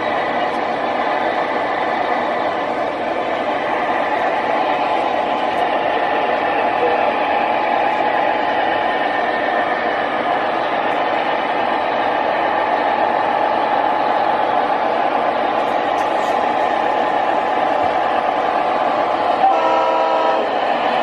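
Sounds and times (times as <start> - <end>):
model train diesel engine drone: 0.0 - 21.0.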